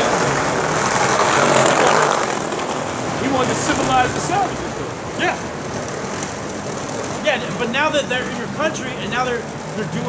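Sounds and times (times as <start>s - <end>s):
vehicle passing: 0.0s - 10.0s.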